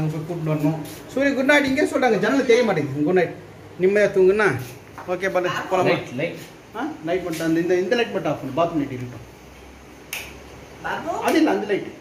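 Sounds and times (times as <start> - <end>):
man speaking: 0.0 - 9.2
sharp click: 10.1 - 10.4.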